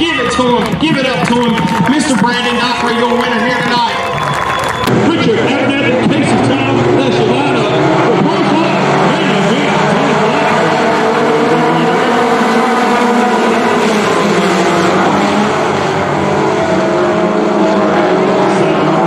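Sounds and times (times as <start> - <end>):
race car engines roaring: 0.0 - 19.0.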